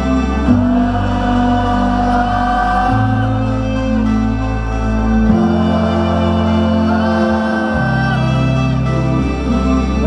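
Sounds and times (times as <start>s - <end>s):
low bass: 0.0s - 10.0s
synth chords: 0.0s - 10.0s.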